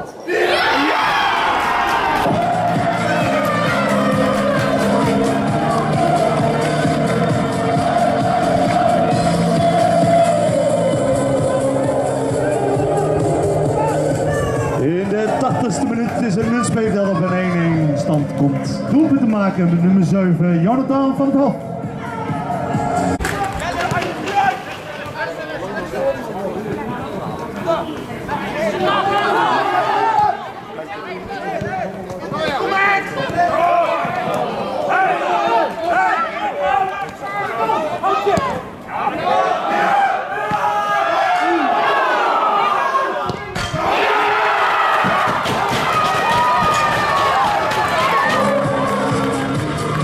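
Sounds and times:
players and spectators shouting: 0.0 - 20.8, 21.6 - 50.0.

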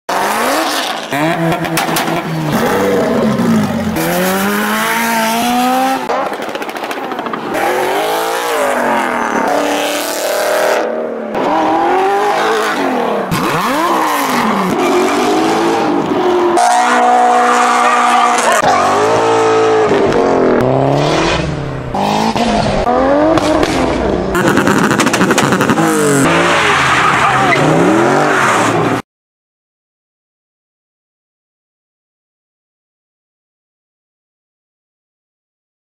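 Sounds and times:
car engines revving: 0.1 - 29.0
cars accelerating and passing: 0.1 - 29.0.

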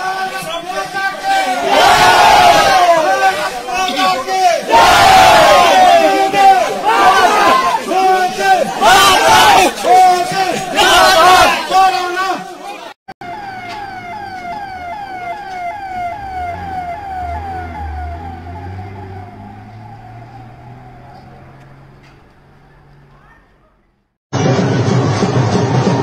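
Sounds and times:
crowd chanting and shouting: 0.0 - 12.9, 13.8 - 23.1
siren with falling sweeps: 13.2 - 23.0.

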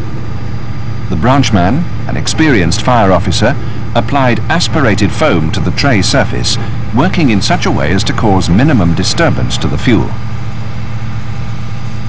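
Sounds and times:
pump engine droning: 0.0 - 12.0.

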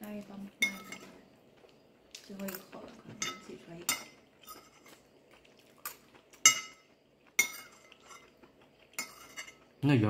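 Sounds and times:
utensil clinking: 2.2 - 5.0.

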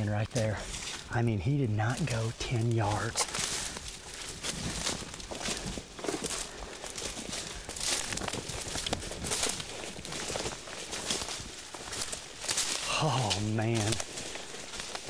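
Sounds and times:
footsteps crunching leaves: 0.0 - 15.0.

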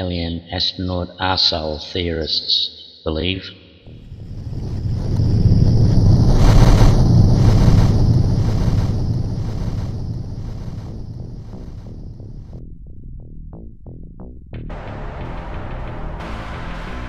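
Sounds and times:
deep rushing whoosh: 3.9 - 12.8.

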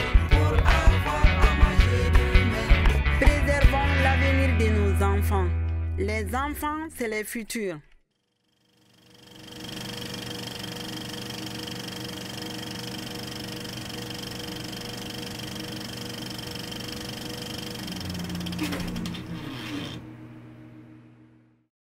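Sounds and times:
film projector whirring: 8.3 - 21.5.

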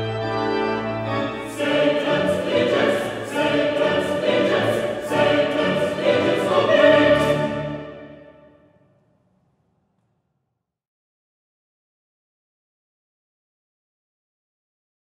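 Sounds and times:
pipe organ chord: 0.0 - 8.6
mixed choir singing: 1.1 - 8.6.

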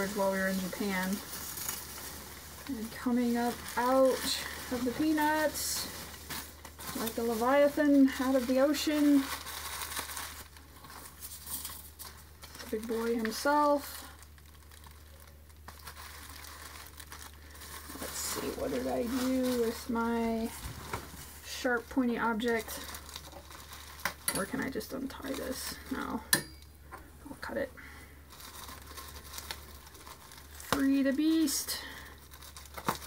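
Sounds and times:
bubble wrap crinkling: 0.0 - 26.2, 27.4 - 33.0.

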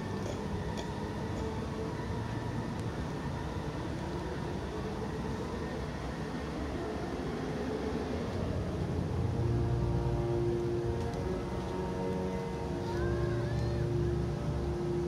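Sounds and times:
distant city rumble: 0.0 - 15.0
faint far-off music: 0.0 - 15.0.

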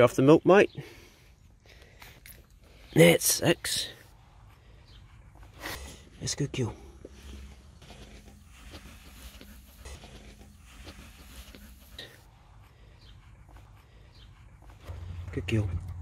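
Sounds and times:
small animal sounds: 2.9 - 15.0.

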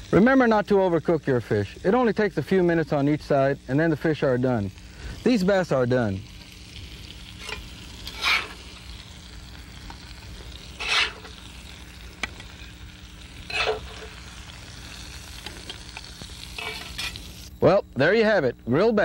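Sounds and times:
fish sizzling on grill: 0.0 - 19.0
metal spatula scraping: 7.4 - 8.6, 10.7 - 11.4, 13.4 - 14.2, 16.5 - 17.3.

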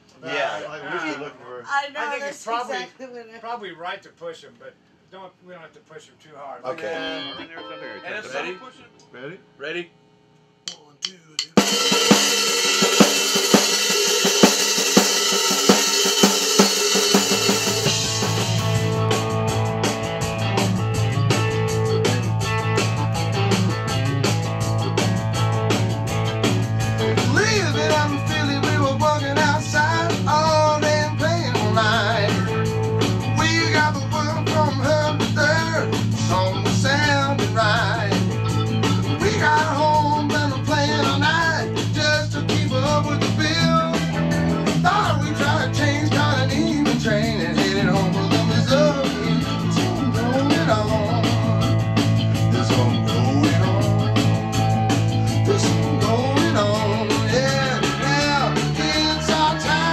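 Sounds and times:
guitars: 6.7 - 9.1, 15.7 - 59.9
drums: 9.4 - 59.9
bass guitar: 11.6 - 59.9
man singing: 27.0 - 32.7, 33.3 - 38.3, 39.1 - 51.6, 52.3 - 54.3, 55.4 - 59.9.

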